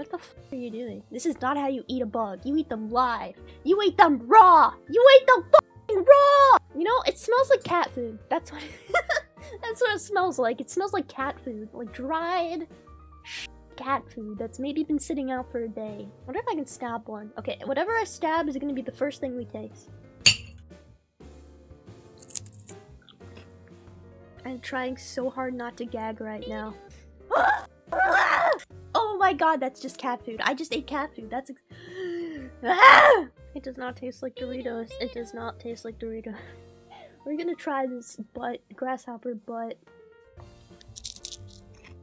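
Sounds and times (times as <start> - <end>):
soft background music: 0.0 - 42.0
person chewing crunchy food: 22.2 - 23.4, 40.8 - 42.0.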